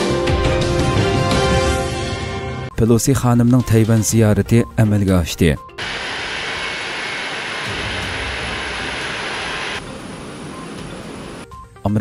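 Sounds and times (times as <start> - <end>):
jet engines taxiing hiss: 5.8 - 11.5.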